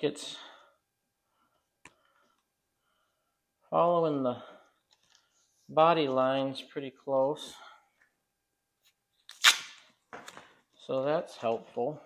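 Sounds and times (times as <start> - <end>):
tape ripping off roll: 9.3 - 10.5.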